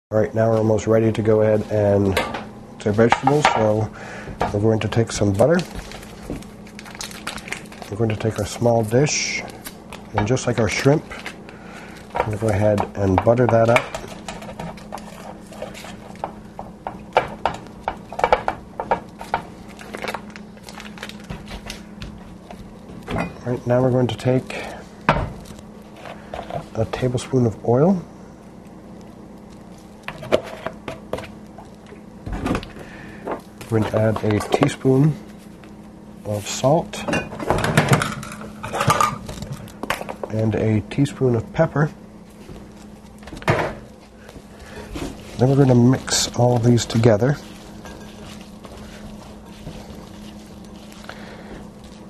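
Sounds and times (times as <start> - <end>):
low steady hum: 0.1 - 52.0
wet squishing and rustling: 5.2 - 36.8, 42.2 - 52.0.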